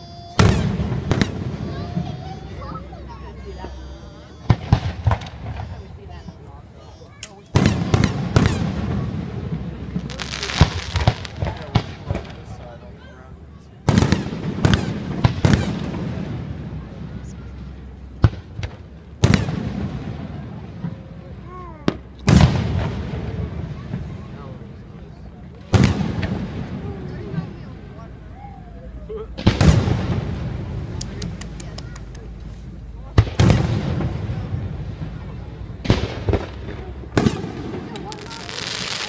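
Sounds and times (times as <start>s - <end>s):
firework shells booming: 0.1s - 6.4s, 7.2s - 12.6s, 13.8s - 17.2s, 18.1s - 21.2s, 21.8s - 24.4s, 25.5s - 27.9s, 29.3s - 39.0s
sharp firework pops: 0.4s - 2.8s, 4.4s - 6.4s, 7.1s - 12.6s, 13.8s - 16.5s, 18.2s - 21.1s, 21.8s - 24.1s, 25.5s - 27.6s, 29.4s - 39.0s.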